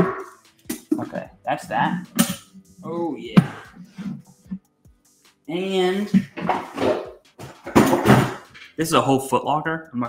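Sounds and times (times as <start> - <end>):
wooden box handled and set down: 6.1 - 8.7.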